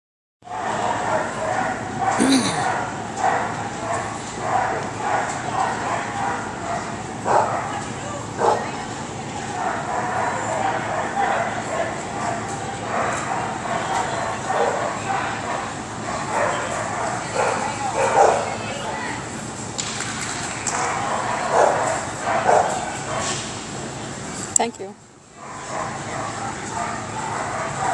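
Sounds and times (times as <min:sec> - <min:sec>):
people talking in background: 0:00.6 - 0:27.9
small dog barking: 0:00.7 - 0:07.8, 0:16.3 - 0:18.6, 0:20.8 - 0:23.3.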